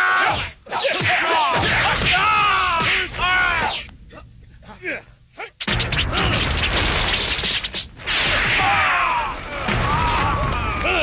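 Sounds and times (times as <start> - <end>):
crashes whacks and whooshes: 5.6 - 10.2.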